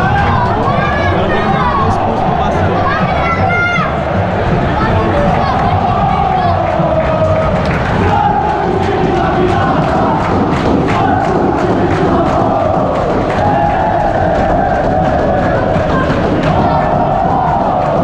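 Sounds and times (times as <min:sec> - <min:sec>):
sharp beats: 0:00.0 - 0:18.0
stadium crowd chanting: 0:00.0 - 0:18.0.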